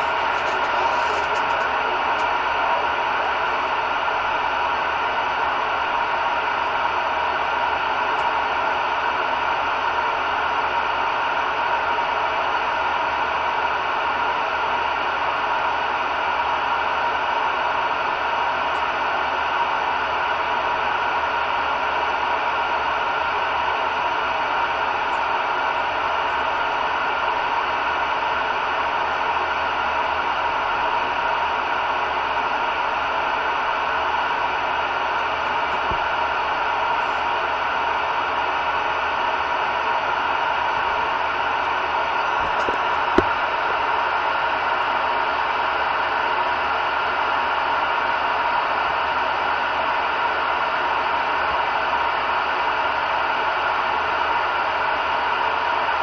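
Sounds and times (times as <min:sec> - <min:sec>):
radio static hiss: 0:00.0 - 0:04.1, 0:42.4 - 0:43.4.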